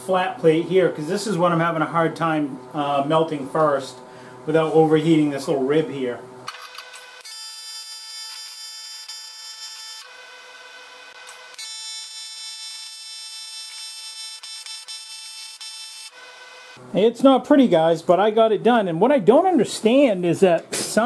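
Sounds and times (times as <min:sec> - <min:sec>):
welding arc buzzing: 0:06.4 - 0:17.0.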